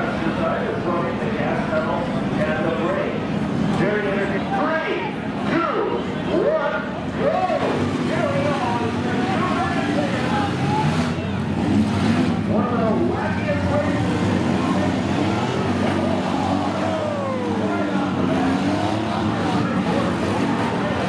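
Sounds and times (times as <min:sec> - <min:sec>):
minivan engines revving: 0:00.0 - 0:21.0.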